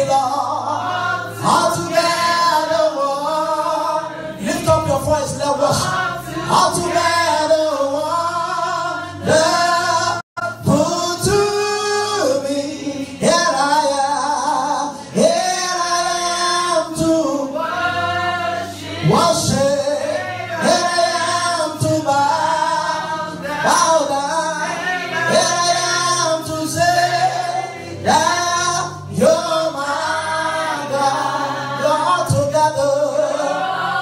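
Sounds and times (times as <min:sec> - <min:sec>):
man singing gospel into microphone: 0:00.0 - 0:34.0.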